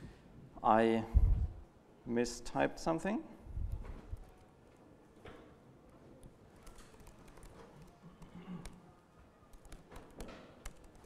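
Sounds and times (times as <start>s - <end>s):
computer keyboard typing clicks: 6.2s - 8.8s, 9.5s - 11.0s.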